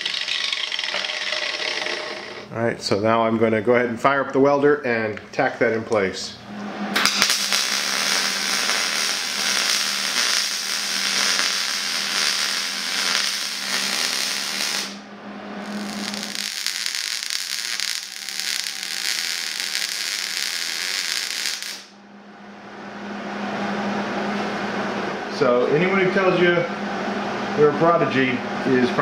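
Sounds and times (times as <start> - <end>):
welding arc crackling: 0.0 - 2.5, 6.9 - 21.9.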